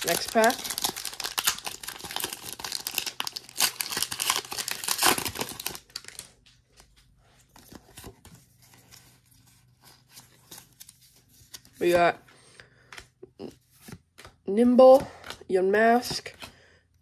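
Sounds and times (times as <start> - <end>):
foil wrapper crinkling and tearing: 0.0 - 6.5
cards rustling and clicking: 0.0 - 16.7.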